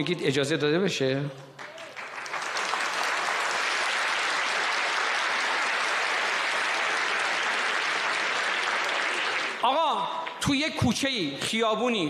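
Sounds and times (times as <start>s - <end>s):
large audience clapping: 1.5s - 10.4s.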